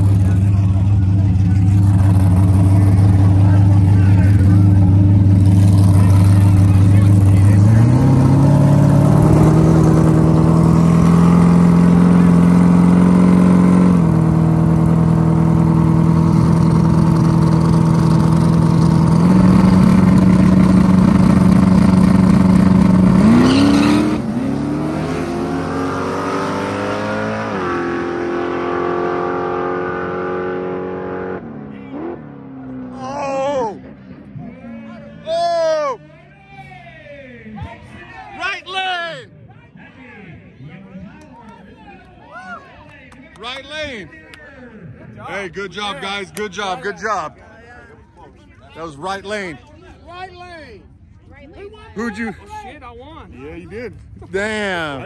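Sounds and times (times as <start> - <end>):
race car engines revving: 0.0 - 36.1, 44.6 - 47.4.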